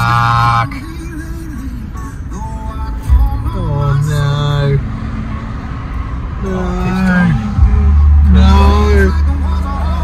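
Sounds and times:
car interior road rumble: 0:00.0 - 0:10.0
music: 0:00.8 - 0:04.4, 0:07.4 - 0:10.0.

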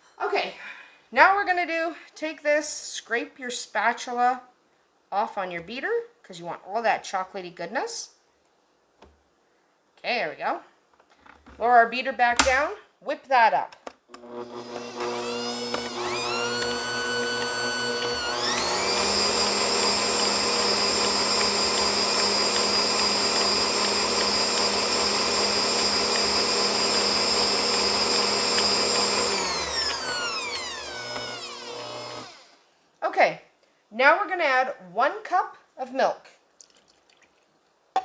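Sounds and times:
stand mixer motor whining: 0:14.2 - 0:32.5.

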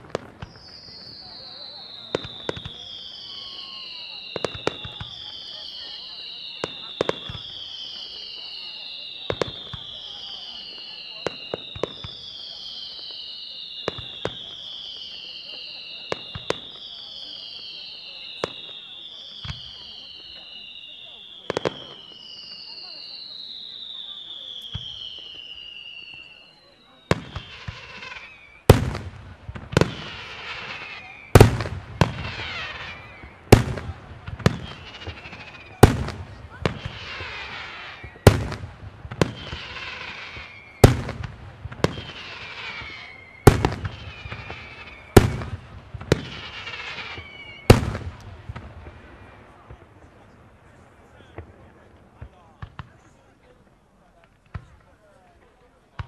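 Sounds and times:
firework whistles: 0:00.0 - 0:55.1
firework crackle: 0:00.0 - 0:56.0.

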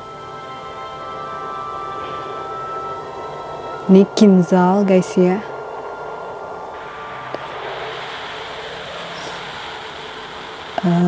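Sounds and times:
jet engine taking off: 0:00.0 - 0:11.0.

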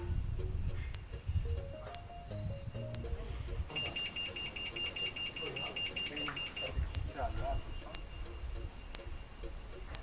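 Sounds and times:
gate bell rapid beeping: 0:03.7 - 0:06.8.

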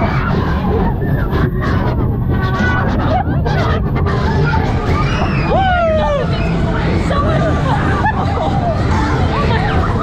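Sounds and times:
babble of voices: 0:00.0 - 0:10.0
ride rumbling: 0:00.0 - 0:10.0.

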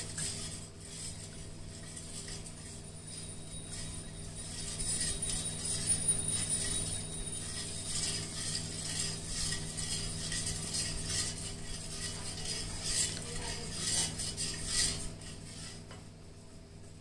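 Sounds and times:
metal spoon scraping steel pot: 0:00.0 - 0:15.8.

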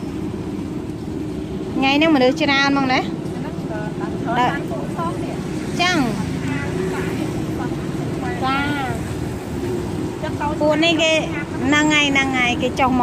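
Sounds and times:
people talking: 0:01.8 - 0:09.1, 0:10.2 - 0:13.0.

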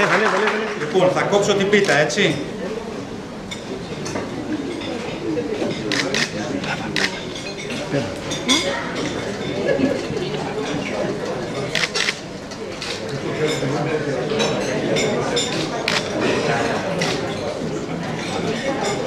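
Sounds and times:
chatter of people: 0:00.0 - 0:19.0
tableware clinking: 0:01.5 - 0:02.6, 0:03.4 - 0:19.0.

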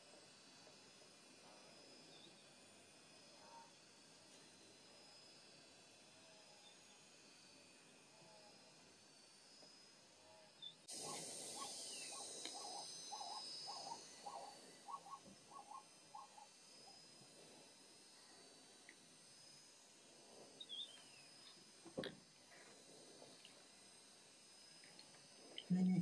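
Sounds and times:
short repeated animal calls: 0:11.0 - 0:16.5.

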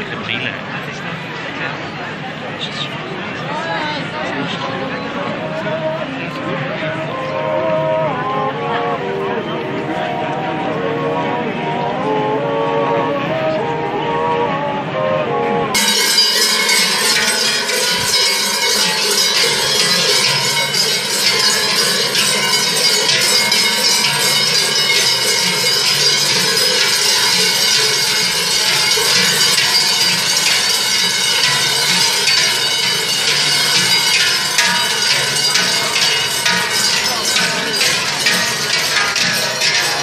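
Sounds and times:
cowbells jangling: 0:15.8 - 0:40.0.

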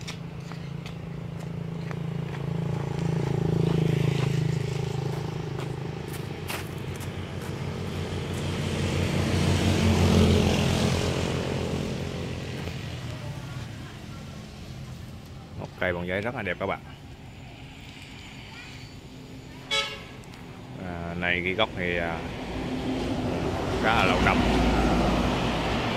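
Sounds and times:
loud vehicle passing: 0:00.0 - 0:15.2, 0:15.8 - 0:25.9
motorbike engine passing: 0:00.6 - 0:15.0.

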